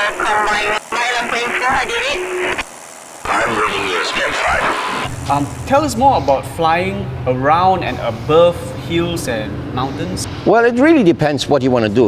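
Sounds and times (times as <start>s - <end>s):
voice over radio: 0.0s - 2.3s, 3.3s - 6.9s
radio hiss: 0.0s - 10.5s
person answering over radio: 3.3s - 5.4s.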